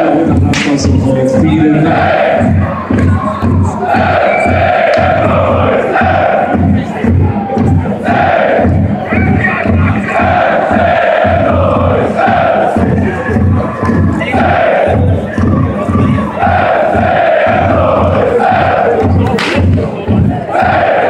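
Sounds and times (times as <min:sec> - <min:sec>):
football crowd chanting: 0:00.0 - 0:21.0
steady low beat: 0:00.0 - 0:21.0.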